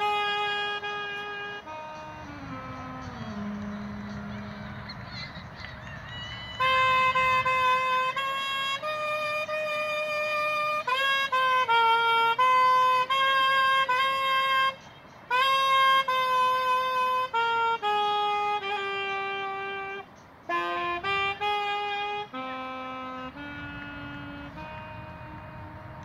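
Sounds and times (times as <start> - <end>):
saxophone playing slow melody: 0.0 - 26.0.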